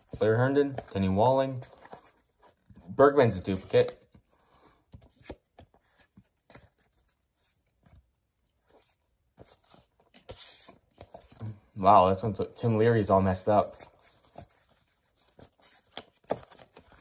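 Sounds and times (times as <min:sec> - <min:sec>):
cards clicking and rustling: 0:00.0 - 0:08.1, 0:13.3 - 0:17.0.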